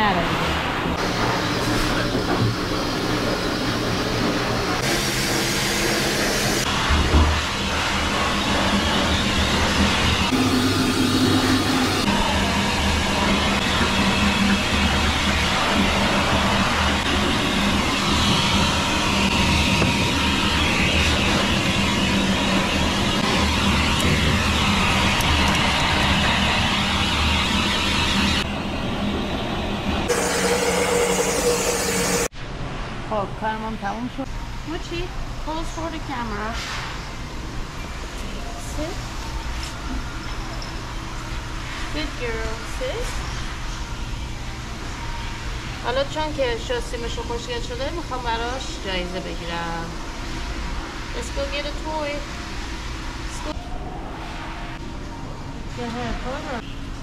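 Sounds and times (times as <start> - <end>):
pet dryer blowing air: 1.0 - 28.2, 30.1 - 32.3.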